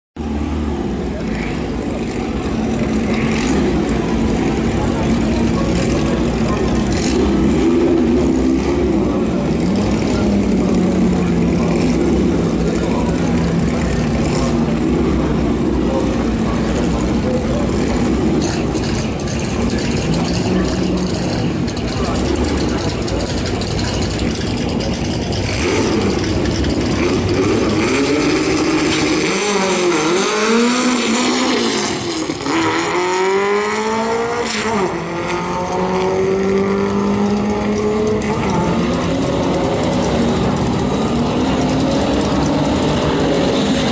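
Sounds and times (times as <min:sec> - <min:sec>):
car engines idling and revving: 0:00.2 - 0:43.9
cars launching with engines climbing: 0:00.2 - 0:43.9.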